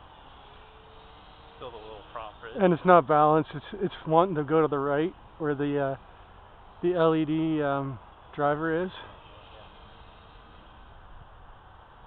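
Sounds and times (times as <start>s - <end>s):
distant model airplane motor hum: 0.0s - 12.0s.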